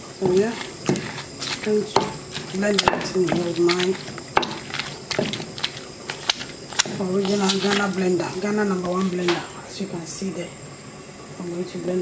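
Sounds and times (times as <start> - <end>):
wooden pestle grinding in bowl: 0.0 - 9.4
pestle knocking on bowl: 0.2 - 8.0.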